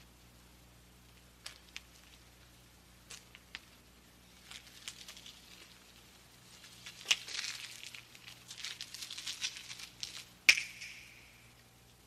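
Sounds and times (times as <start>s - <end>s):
faint low hum: 0.0s - 12.0s
light crackling and ticking: 0.3s - 12.0s
sharp knock with ringing tail: 10.5s - 11.5s.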